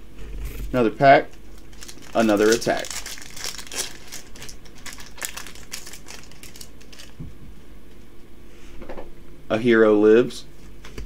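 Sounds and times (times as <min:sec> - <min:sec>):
foil wrapper crinkling and tearing: 0:01.3 - 0:07.2.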